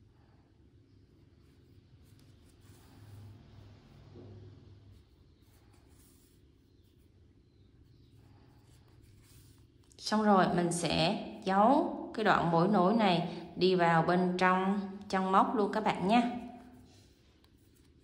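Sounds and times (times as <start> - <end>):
yarn rustling through stitches: 1.3 - 10.8.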